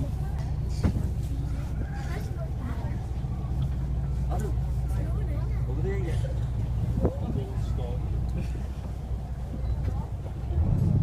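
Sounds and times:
boat engine humming: 0:00.0 - 0:11.0
people's voices: 0:00.0 - 0:11.0.

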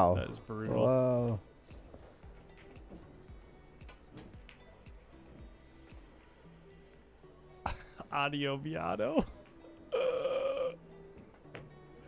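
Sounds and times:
faint background music: 0:00.0 - 0:12.0
pool balls clicking: 0:03.8 - 0:05.0.

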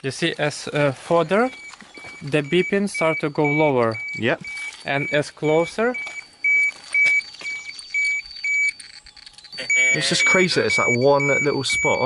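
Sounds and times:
dosimeter short high beeps: 0:01.2 - 0:08.8, 0:09.5 - 0:12.0.

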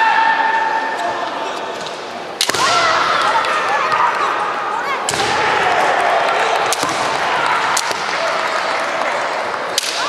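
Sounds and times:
bamboo sword striking crack: 0:02.4 - 0:02.8, 0:09.8 - 0:10.0
fencers shouting: 0:02.4 - 0:10.0.

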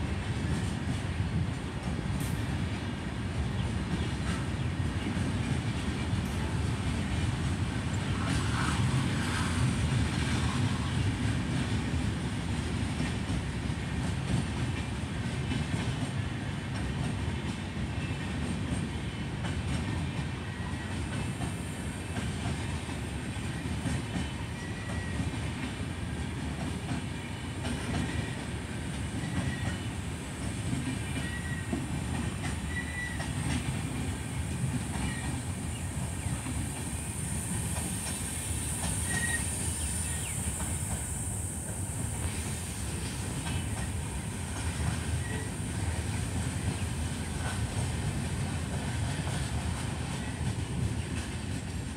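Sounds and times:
freight train rumbling: 0:00.0 - 0:51.9.

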